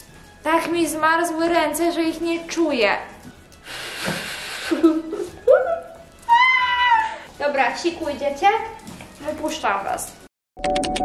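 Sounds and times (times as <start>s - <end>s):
breath blown into hands: 3.6s - 5.1s.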